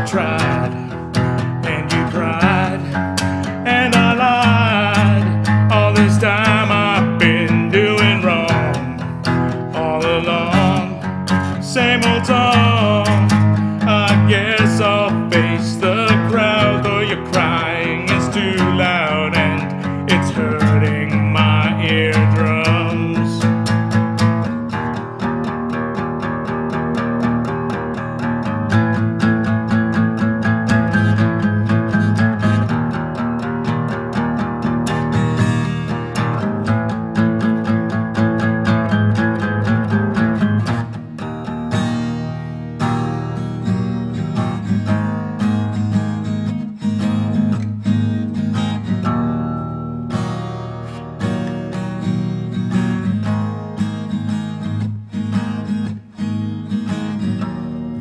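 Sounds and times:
guitar strumming and picking: 0.0s - 58.0s.

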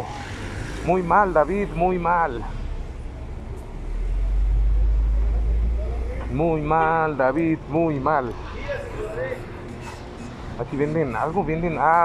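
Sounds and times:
car engines rumbling in traffic: 0.0s - 12.0s.

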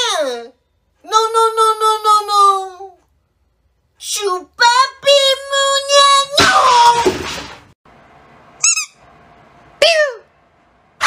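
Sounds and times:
rubber squeaky ball squeaks: 8.6s - 9.0s.

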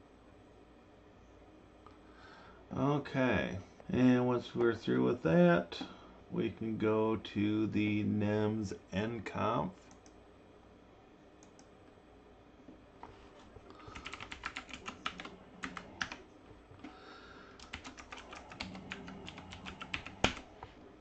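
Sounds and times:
typing on computer keyboard: 13.8s - 16.2s, 17.6s - 20.5s.

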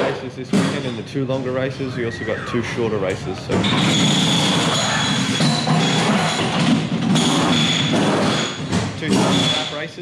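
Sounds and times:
pneumatic wheel guns rattling: 3.6s - 9.7s.

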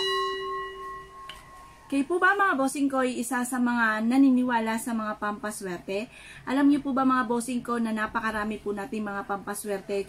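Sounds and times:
metallic bell chime: 0.0s - 1.8s.

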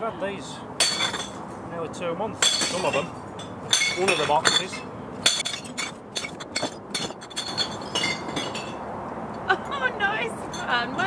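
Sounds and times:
glass bottles clinking: 0.8s - 1.4s, 2.4s - 8.8s.

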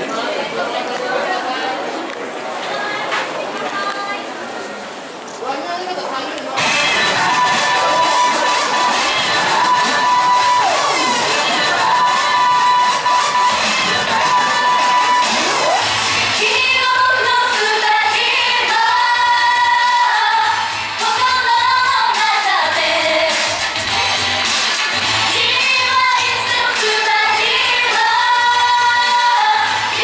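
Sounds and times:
pop song over loudspeakers: 6.5s - 30.0s
women singing into microphones: 6.6s - 23.6s, 25.3s - 30.0s.

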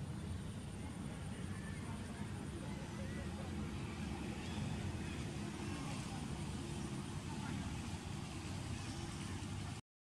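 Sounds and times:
low background rumble: 0.0s - 9.8s.

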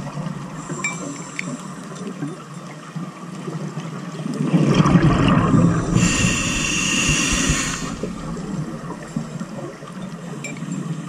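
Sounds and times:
exhaled bubbles underwater: 4.2s - 10.4s
regulator hiss of inhaled air: 5.8s - 9.1s.

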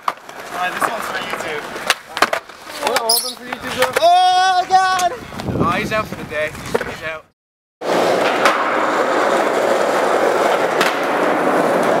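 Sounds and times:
skateboard wheels rolling on concrete: 0.0s - 12.0s.

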